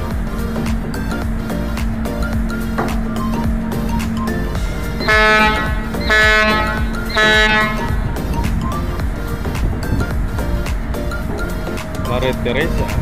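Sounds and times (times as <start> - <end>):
background music: 0.0 - 13.0
ferry horn blasts: 4.6 - 8.4.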